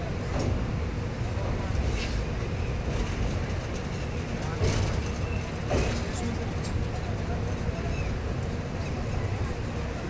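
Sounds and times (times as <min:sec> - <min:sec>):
train rumbling over bridge: 0:00.0 - 0:10.0.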